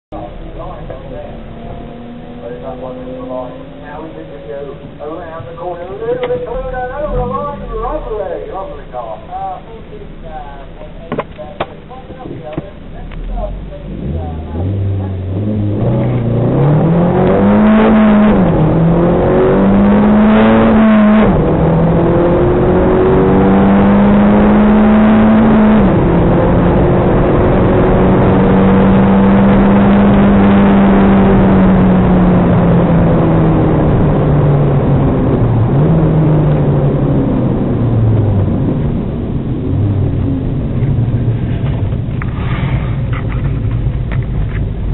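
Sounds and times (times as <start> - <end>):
car engine revving with upshifts: 0.2 - 44.9.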